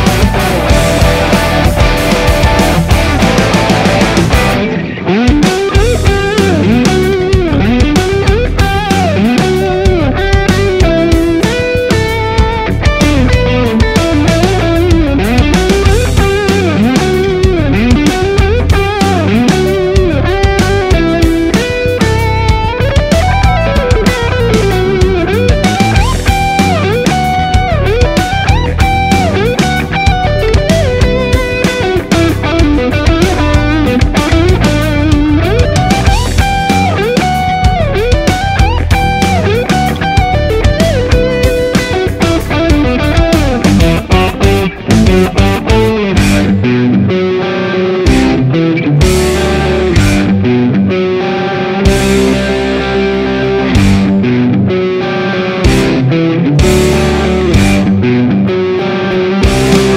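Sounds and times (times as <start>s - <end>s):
backing track with drums: 0.0s - 47.0s, 48.0s - 50.7s, 51.8s - 58.1s, 59.2s - 59.9s
electric guitar lead with bends: 0.0s - 59.9s.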